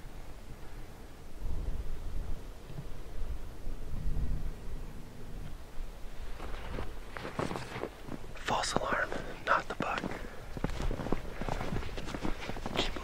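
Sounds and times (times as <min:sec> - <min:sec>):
wind rumble on microphone: 0:00.0 - 0:13.0
soft rustling: 0:06.1 - 0:13.0.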